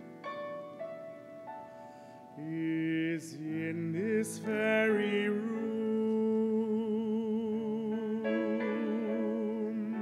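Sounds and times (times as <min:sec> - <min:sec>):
man singing long note: 0:02.4 - 0:10.0.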